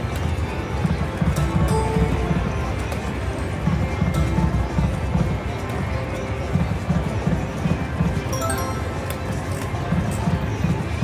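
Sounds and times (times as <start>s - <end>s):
slot machine drumming beat: 1.6s - 2.8s, 8.3s - 9.5s
short chime notes: 8.4s - 9.4s.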